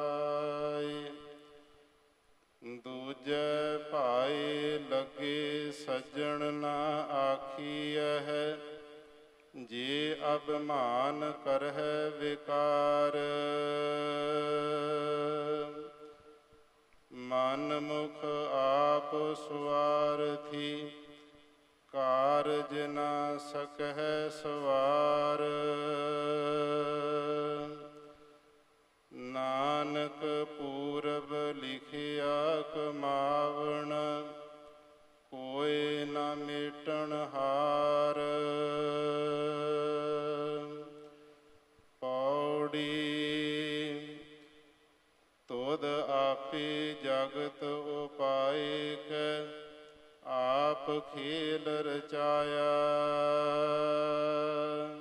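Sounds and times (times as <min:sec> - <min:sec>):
person chanting verses: 0:00.0 - 0:01.8, 0:02.6 - 0:16.5, 0:17.1 - 0:28.4, 0:29.1 - 0:44.8, 0:45.4 - 0:55.0.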